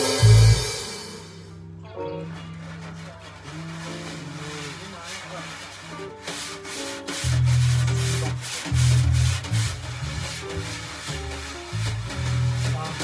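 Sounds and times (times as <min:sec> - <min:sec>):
drum kit played with sticks: 0:00.0 - 0:01.6, 0:02.3 - 0:13.0
bass line: 0:00.0 - 0:01.8, 0:07.2 - 0:13.0
small jazz combo playing: 0:00.0 - 0:13.0.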